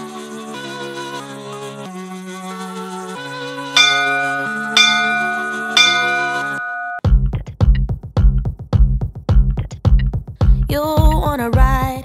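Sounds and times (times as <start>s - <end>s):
bright bell chimes: 3.8s - 7.0s
sustained synth chords: 3.8s - 7.0s.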